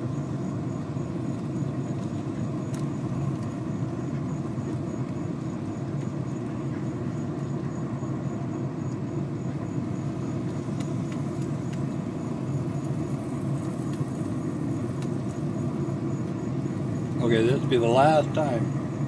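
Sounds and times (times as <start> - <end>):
fan humming: 0.0 - 19.0.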